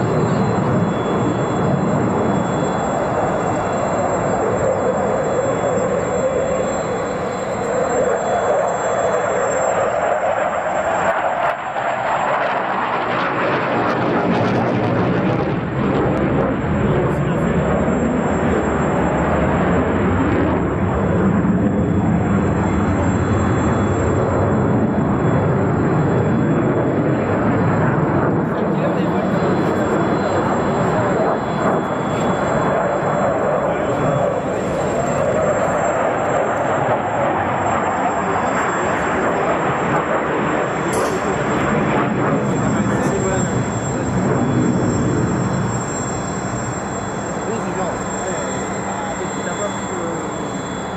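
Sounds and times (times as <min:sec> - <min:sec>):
fighter jet engine roaring: 0:00.0 - 0:50.9.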